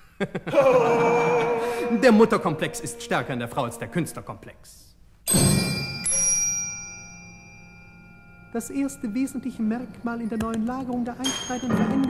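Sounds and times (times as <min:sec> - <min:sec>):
struck bell-like metallic tones: 0:05.3 - 0:12.0.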